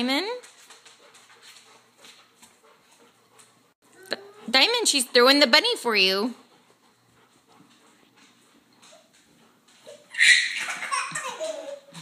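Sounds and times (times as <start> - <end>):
dog breathing faintly: 0.0 - 10.0.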